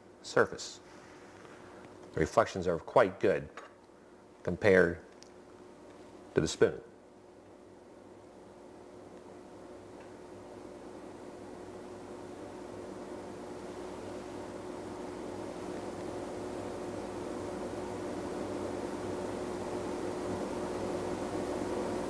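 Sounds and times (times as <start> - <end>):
steady hum: 0.0 - 22.0.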